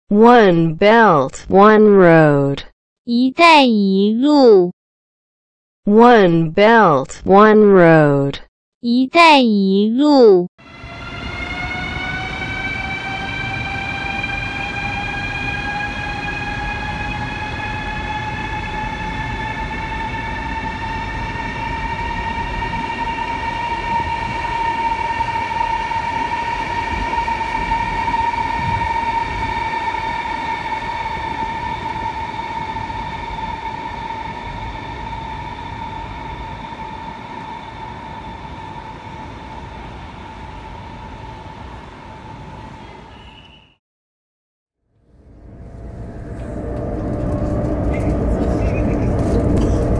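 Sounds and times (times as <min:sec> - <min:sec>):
electric train motor whine: 0:10.6 - 0:42.8, 0:45.0 - 0:49.9
wheels rumbling on rails: 0:10.6 - 0:43.3, 0:45.0 - 0:49.9.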